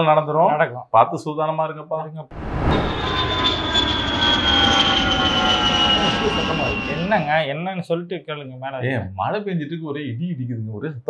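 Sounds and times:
jet airplane flying overhead: 0:02.3 - 0:07.5.

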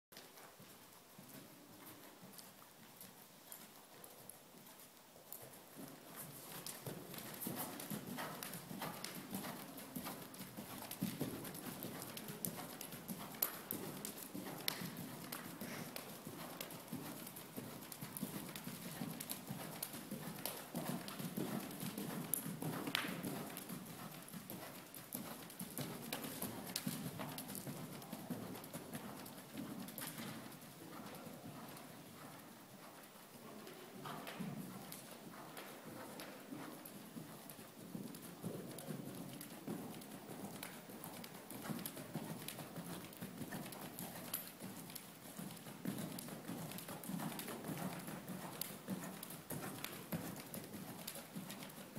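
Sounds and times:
horse hoofbeats on sand: 0:05.4 - 0:30.3.

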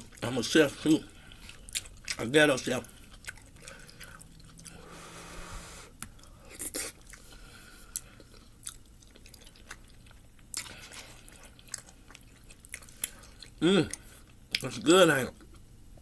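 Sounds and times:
person chewing: 0:00.0 - 0:16.0.

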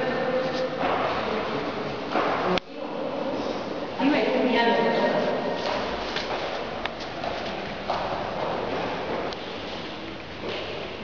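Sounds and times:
footsteps on hard floor: 0:05.6 - 0:10.8.

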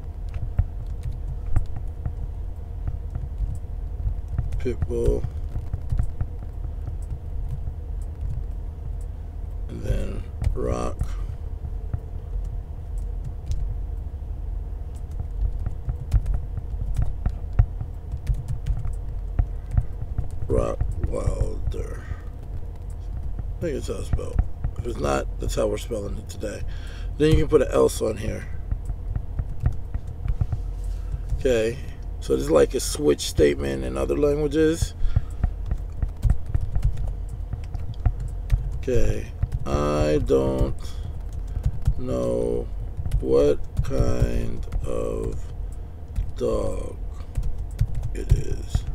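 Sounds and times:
steady low hum: 0:00.0 - 0:48.9.

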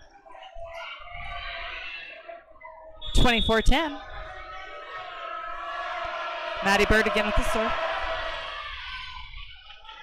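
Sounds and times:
murmur of spectators: 0:00.0 - 0:10.0
scattered voices in a hall: 0:00.0 - 0:10.0.

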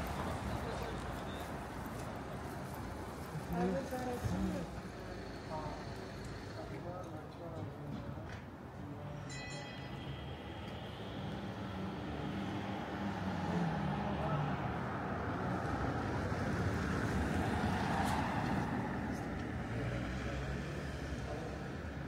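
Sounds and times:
road traffic passing: 0:00.0 - 0:22.0.

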